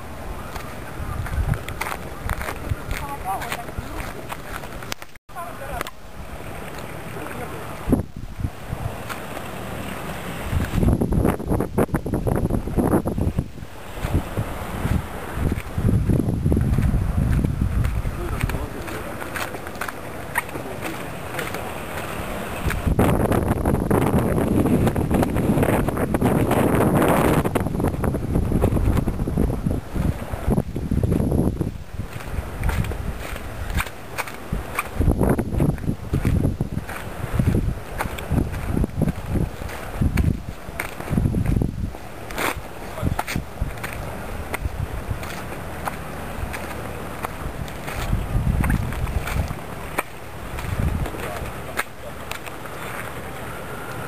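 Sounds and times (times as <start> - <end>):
wind on microphone: 0.0 - 54.0.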